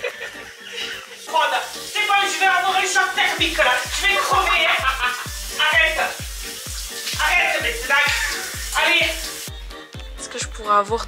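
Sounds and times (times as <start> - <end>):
voice over music: 0.8 - 6.3, 7.0 - 9.5.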